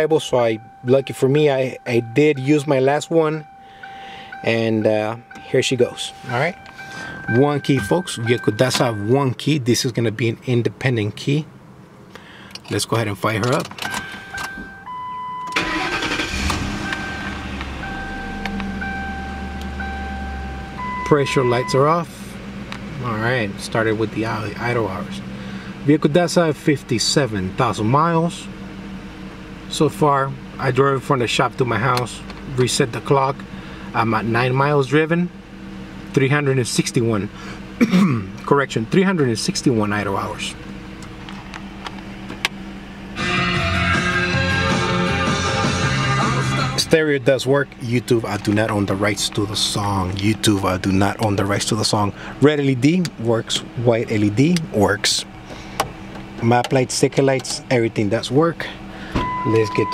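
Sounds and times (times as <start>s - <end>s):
thin steady tone: 0.0s - 9.6s
car engine cranking and idling: 0.0s - 59.9s
steady low hum: 0.0s - 59.9s
guitar rock music on car stereo: 43.2s - 47.1s.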